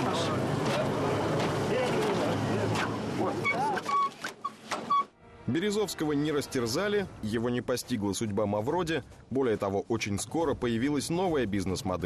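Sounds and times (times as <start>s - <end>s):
inflatable vinyl squeaking: 2.8s - 5.2s.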